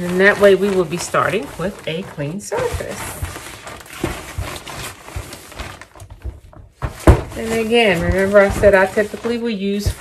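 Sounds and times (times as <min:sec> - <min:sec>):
paper towel wiping and rustling: 0:00.0 - 0:10.0.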